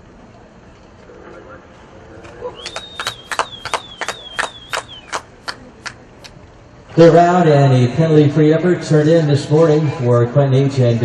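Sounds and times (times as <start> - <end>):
long high whistle: 2.6 - 5.2
person clapping steadily: 2.6 - 6.4.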